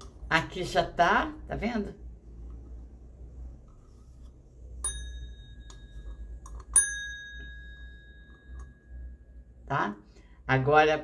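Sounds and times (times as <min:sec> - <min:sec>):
metal object tapped ringing: 0:04.8 - 0:09.4.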